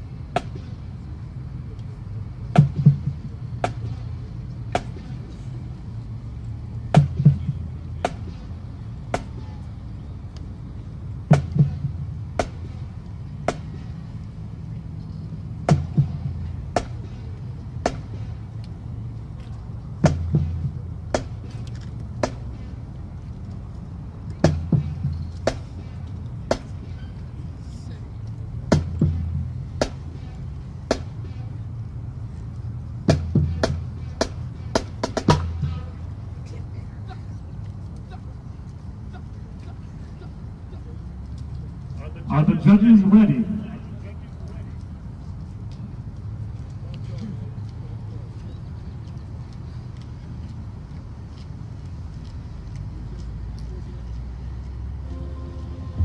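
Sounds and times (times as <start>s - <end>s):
drumline sharp clicking taps: 2.6s - 4.2s, 4.8s - 5.3s, 11.3s - 14.4s, 15.7s - 17.2s, 17.8s - 18.8s, 19.4s - 22.7s, 24.2s - 27.0s, 28.2s - 30.2s, 30.9s - 31.4s, 33.1s - 36.0s.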